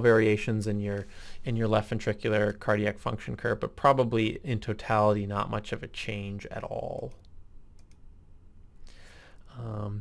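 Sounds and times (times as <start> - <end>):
low steady hum: 0.0 - 10.0
computer clicks: 6.9 - 8.1.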